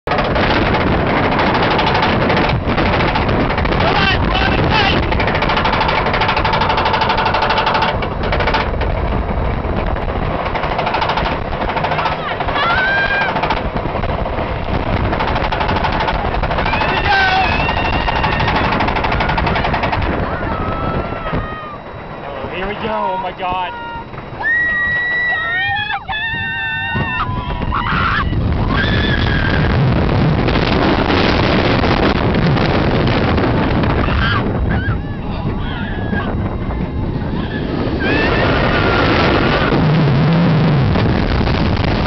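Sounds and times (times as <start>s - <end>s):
roller coaster chain lift clattering: 0.1s - 39.8s.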